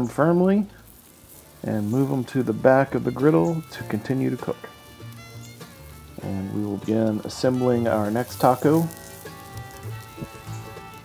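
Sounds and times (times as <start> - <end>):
soft background music: 0.0 - 11.0
tortilla sizzling in oil: 0.0 - 11.0.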